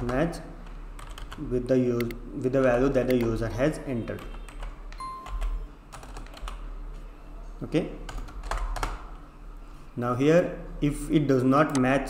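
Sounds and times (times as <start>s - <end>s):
computer keyboard keystrokes: 0.0s - 1.4s, 2.0s - 3.4s, 4.2s - 6.6s, 8.1s - 9.0s, 11.7s - 11.9s.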